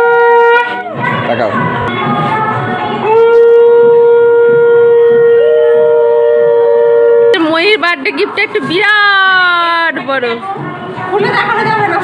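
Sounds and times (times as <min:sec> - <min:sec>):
conch shell blown: 0:00.0 - 0:00.9, 0:02.8 - 0:07.5
higher conch note: 0:00.0 - 0:01.0, 0:01.9 - 0:07.7.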